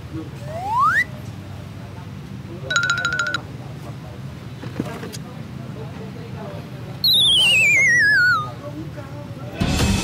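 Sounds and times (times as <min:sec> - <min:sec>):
comedy falling whistle: 0:00.5 - 0:01.2, 0:07.0 - 0:08.6.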